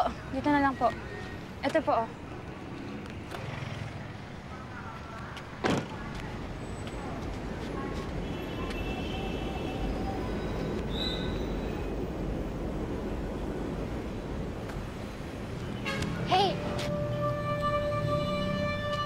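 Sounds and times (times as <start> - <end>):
rumble of passing vehicles: 0.0 - 19.0.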